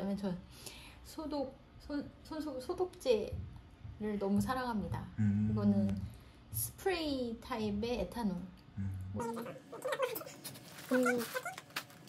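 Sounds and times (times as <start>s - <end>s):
woman humming: 8.8s - 10.0s.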